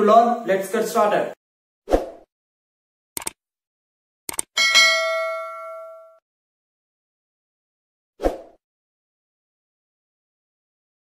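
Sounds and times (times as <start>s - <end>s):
quick clicks: 3.2s - 3.4s, 4.3s - 4.5s
bright bell ding: 4.6s - 6.2s.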